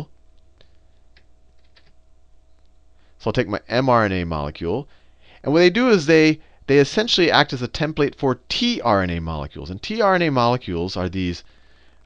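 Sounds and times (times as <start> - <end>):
low electrical hum: 0.0 - 12.0
computer keyboard clicks: 1.1 - 2.0.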